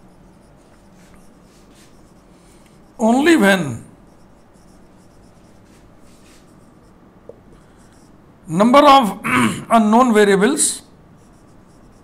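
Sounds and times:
marker pen scratching on whiteboard: 0:00.0 - 0:03.4, 0:04.0 - 0:07.0, 0:07.6 - 0:08.2, 0:11.1 - 0:12.0.

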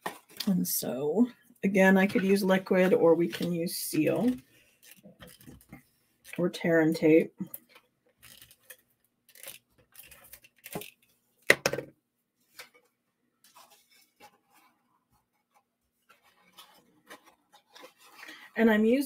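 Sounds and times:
cardstock rustling: 0:13.4 - 0:18.4.

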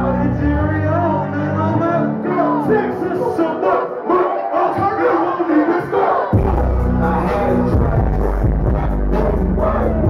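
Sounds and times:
crowd and rapper shouting: 0:01.7 - 0:07.9
heavy bass beat: 0:06.3 - 0:10.0.

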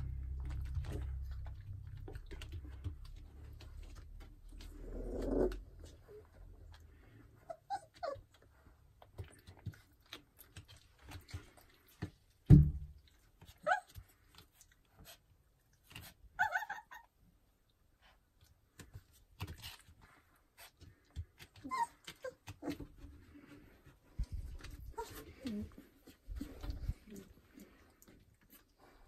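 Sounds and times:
low rumble: 0:00.0 - 0:06.1
puppies whimpering: 0:07.0 - 0:08.6, 0:16.4 - 0:17.1, 0:21.6 - 0:22.9
loud thump: 0:12.5 - 0:12.9.

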